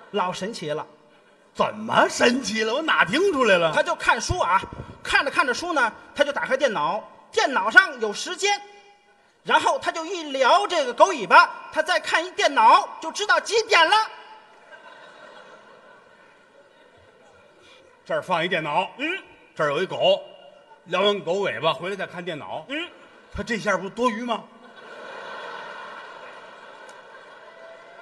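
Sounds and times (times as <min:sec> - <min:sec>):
audience laughter and murmur: 0:14.5 - 0:18.0, 0:22.8 - 0:28.0.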